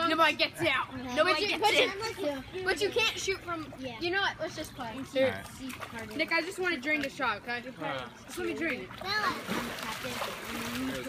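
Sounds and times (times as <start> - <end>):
pool water splashing: 0.0 - 11.0.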